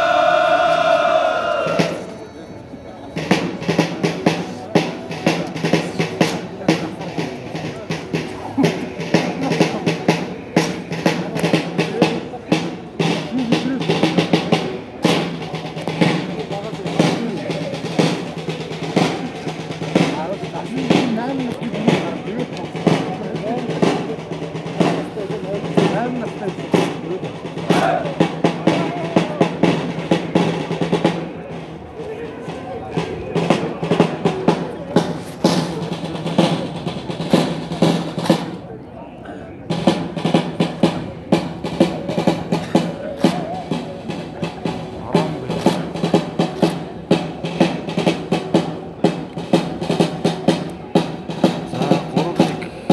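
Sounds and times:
snare and bass drum cadence: 0:00.0 - 0:02.2, 0:03.2 - 0:38.8, 0:39.6 - 0:52.9
crowd voices chattering: 0:00.0 - 0:52.9.

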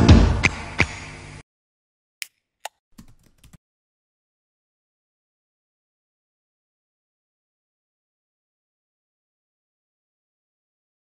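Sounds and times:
keyboard keystrokes: 0:02.7 - 0:03.6.

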